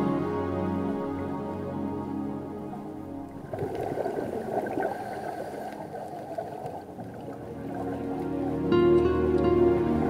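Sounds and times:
soft new-age music: 0.0 - 10.0
regulator bubbles gurgling: 2.5 - 8.7.

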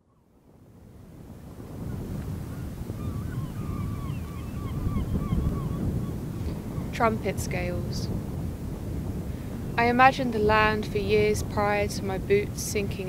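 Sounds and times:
wind buffeting microphone: 0.0 - 13.0
distant bird calls: 1.7 - 7.1.

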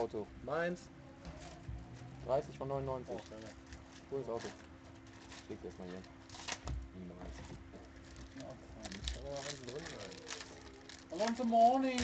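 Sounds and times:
steady low hum: 0.0 - 12.0
trading cards rustling: 3.0 - 6.6, 7.2 - 12.0
murmured talk: 8.4 - 12.0.

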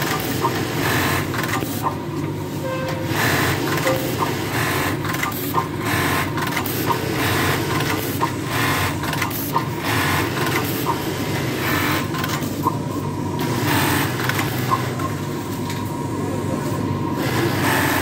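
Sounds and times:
sewing machine hum: 0.0 - 1.6, 3.0 - 9.2
bursts of machine sewing: 0.0 - 1.8, 3.1 - 12.4, 13.4 - 15.0, 17.2 - 18.0.

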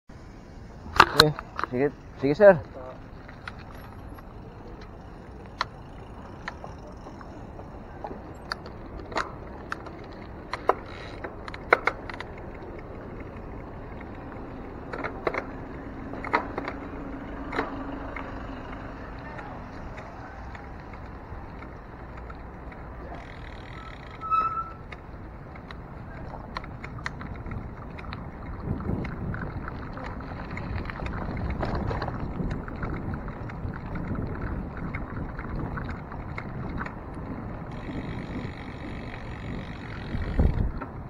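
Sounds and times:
tyre and wind noise: 0.2 - 41.0
bicycle clicks and rattles: 0.8 - 41.0.

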